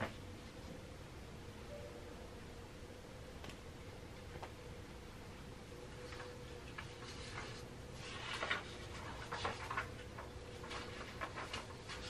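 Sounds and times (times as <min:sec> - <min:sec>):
low room tone hum: 0:00.0 - 0:12.0.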